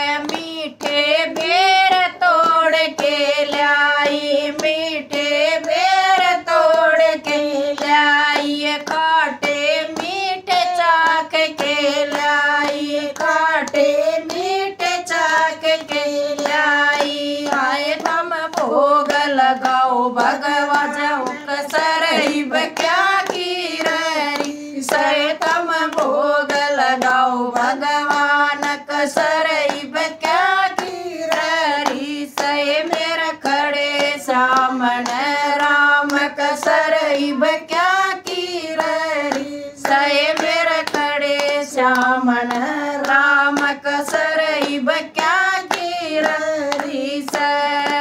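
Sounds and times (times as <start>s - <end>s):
hand claps: 0.0s - 48.0s
women singing in unison: 0.0s - 48.0s.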